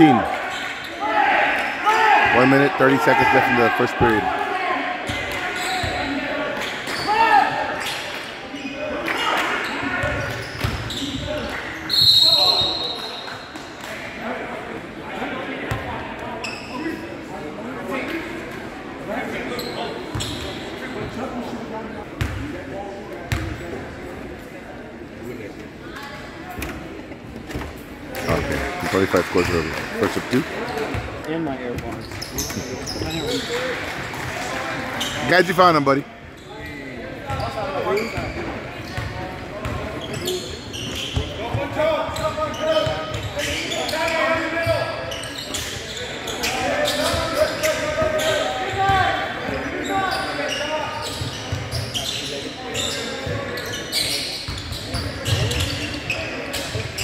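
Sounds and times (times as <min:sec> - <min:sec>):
voices echoing in a hall: 0:00.0 - 0:57.0
referee's whistle blast: 0:11.9 - 0:13.0.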